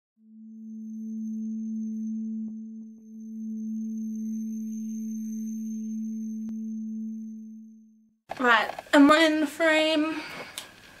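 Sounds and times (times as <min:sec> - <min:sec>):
low electronic drone tone: 0:00.2 - 0:08.3.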